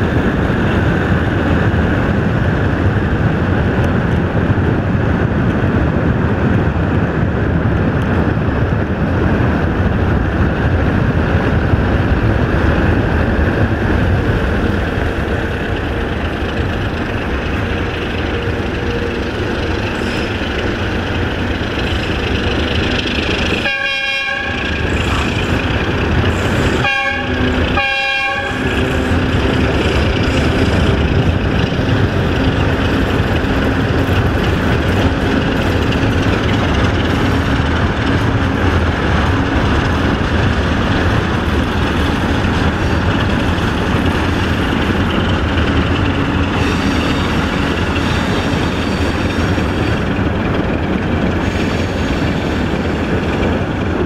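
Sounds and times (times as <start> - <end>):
car road and engine noise: 0.0 - 54.0
locomotive horn blasts: 23.6 - 24.8, 26.6 - 29.3.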